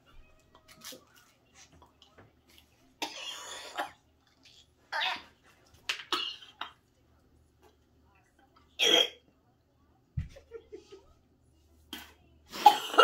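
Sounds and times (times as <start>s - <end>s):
woman coughing hard: 12.6s - 13.0s.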